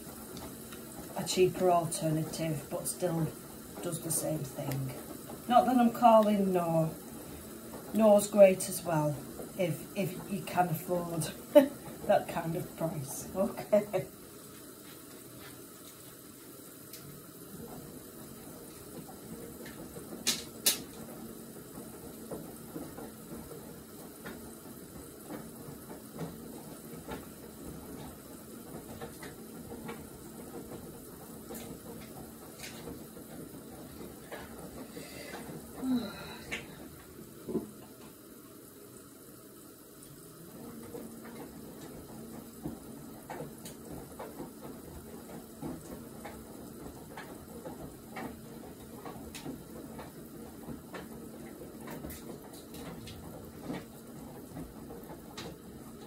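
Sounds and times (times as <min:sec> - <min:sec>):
faint running water: 0:00.0 - 0:56.0.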